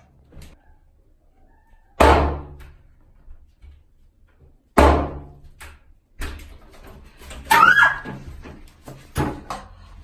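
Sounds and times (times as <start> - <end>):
loud bang against a door: 2.0 - 2.6.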